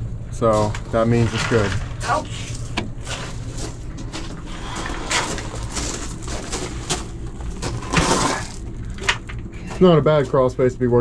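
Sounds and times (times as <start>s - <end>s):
steady low hum: 0.0s - 11.0s
gravel crunching: 0.4s - 10.4s.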